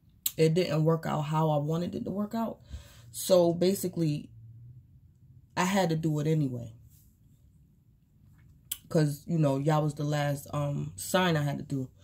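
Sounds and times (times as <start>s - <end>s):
woman speaking: 0.3s - 4.3s, 5.6s - 6.8s, 8.7s - 12.0s.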